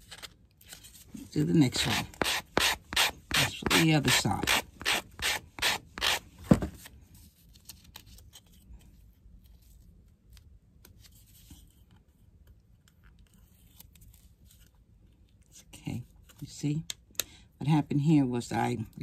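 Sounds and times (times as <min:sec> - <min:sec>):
sanding block on wood: 0:01.7 - 0:06.2.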